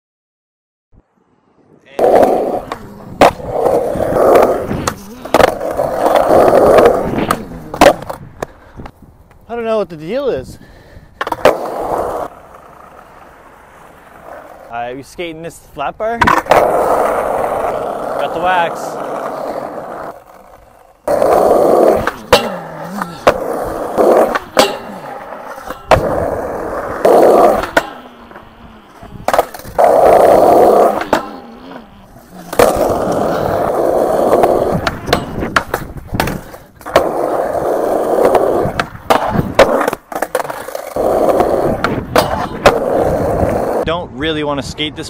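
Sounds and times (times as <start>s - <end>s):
skateboard wheels rolling on concrete: 1.0s - 45.0s
skateboard grinding metal bar: 2.0s - 8.2s, 16.2s - 43.8s
skateboard tail clacks and landings: 2.0s - 9.4s, 11.2s - 14.7s, 16.2s - 18.2s, 18.9s - 43.8s.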